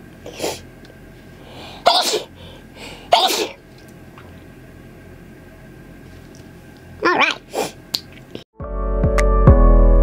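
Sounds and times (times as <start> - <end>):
woman sneezing: 1.8 - 2.3, 3.1 - 3.6.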